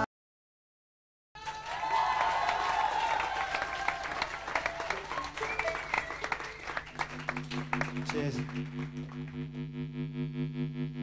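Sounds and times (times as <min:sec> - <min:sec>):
pulsing synthesizer chord: 0:07.0 - 0:11.0.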